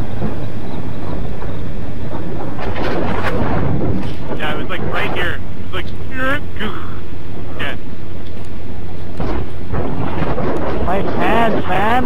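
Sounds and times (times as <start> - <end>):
motorcycle engine drone: 0.0 - 12.0
wind rushing over microphone: 0.0 - 12.0.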